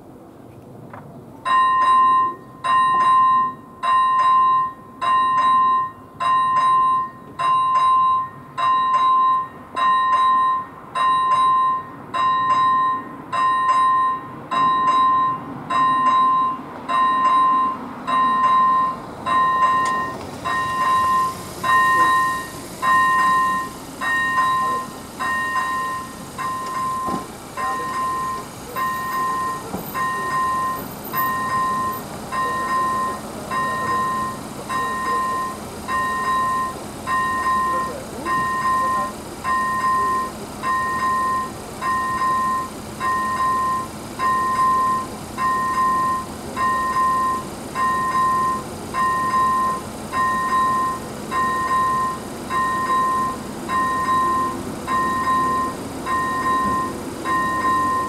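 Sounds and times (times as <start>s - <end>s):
level crossing warning bell: 1.4s - 58.0s.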